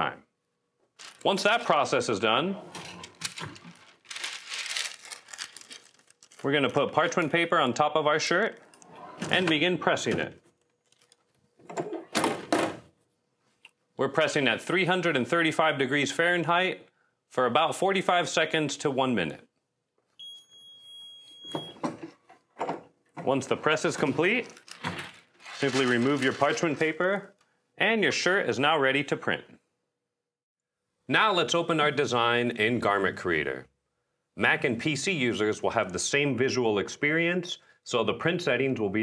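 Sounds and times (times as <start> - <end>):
parchment paper rustling: 1.0 - 1.9, 2.7 - 7.5, 23.6 - 27.3.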